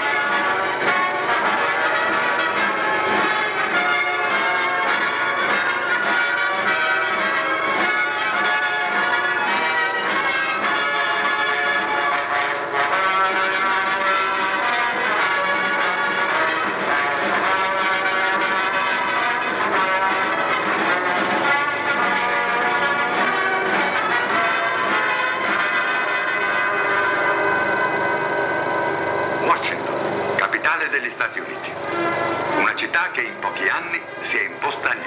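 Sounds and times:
orchestral music: 0.0 - 35.0.

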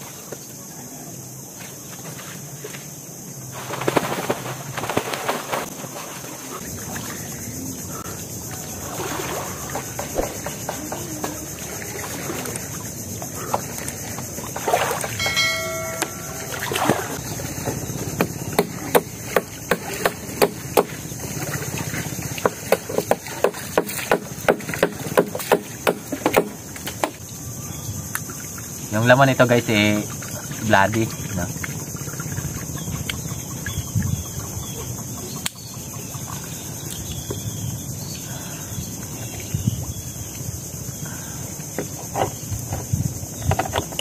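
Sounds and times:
water sloshing and splashing: 1.5 - 37.8.

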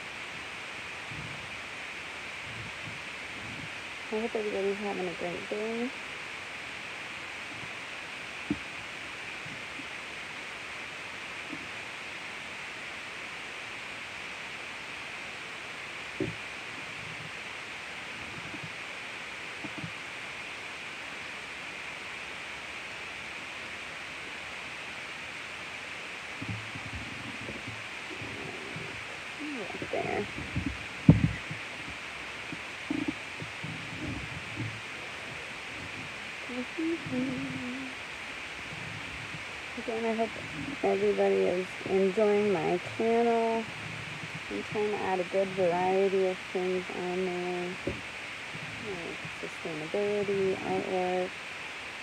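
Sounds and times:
steady hiss: 0.0 - 52.0
faint voice: 3.4 - 6.0, 26.4 - 32.0, 32.9 - 38.0, 48.6 - 51.3.

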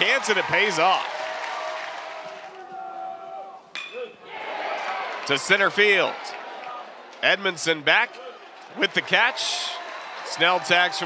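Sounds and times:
stadium crowd noise: 0.0 - 11.0
metal bat hitting ball: 3.7 - 4.0.

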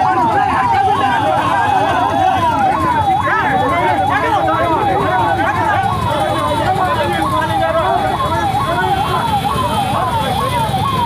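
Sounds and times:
crowd talking and shouting: 0.0 - 11.0
police siren wailing: 0.0 - 11.0.

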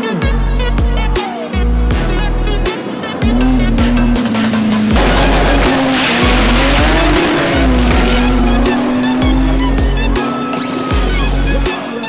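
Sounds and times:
car engine revving: 1.8 - 11.7
electronic music with steady beat: 3.2 - 12.0.

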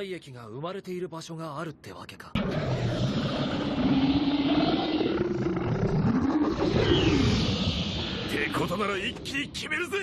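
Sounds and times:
monster roar: 2.4 - 8.6.

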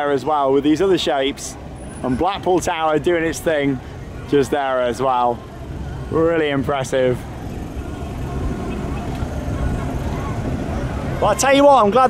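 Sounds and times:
traffic rumble of idling cars: 0.0 - 12.0.

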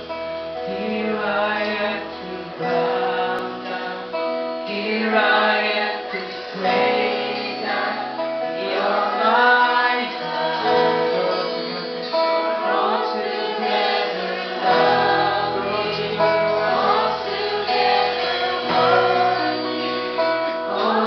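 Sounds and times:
worship band playing: 0.0 - 21.0.

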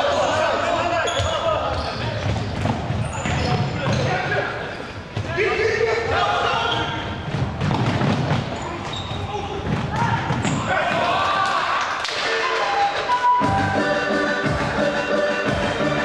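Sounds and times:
players shouting: 8.8 - 13.2
music: 12.2 - 16.0.

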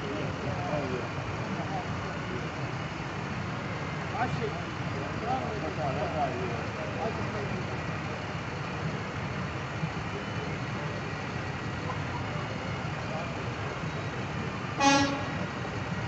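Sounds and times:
street and crowd noise: 0.0 - 16.0
vehicle horn toot: 14.8 - 15.5.

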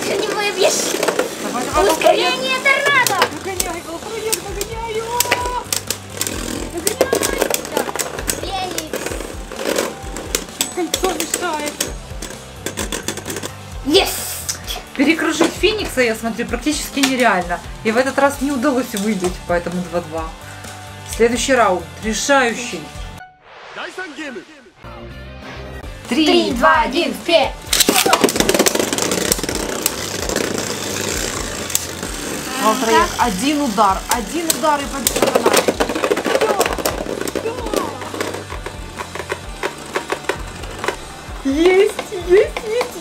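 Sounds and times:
spinning tops clicking together: 2.8 - 13.6, 27.6 - 42.1.

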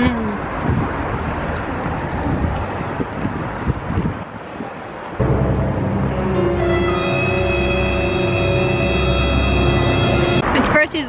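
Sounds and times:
wind buffeting microphone: 0.0 - 6.1
street noise: 0.0 - 11.0
music with held notes: 5.2 - 10.4.

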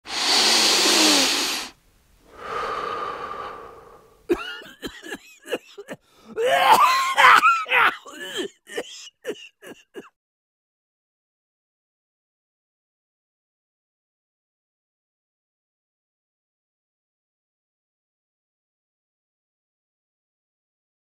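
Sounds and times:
person coughing: 4.3 - 10.2.

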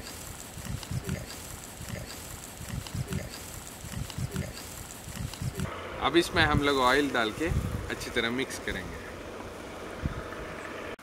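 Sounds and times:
spice powder mixed in steel bowl: 0.0 - 5.7.

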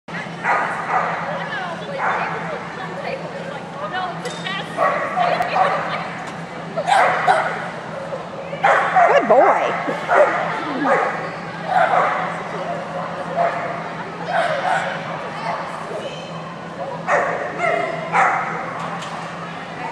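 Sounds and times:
dog barking and yipping: 8.7 - 11.0.

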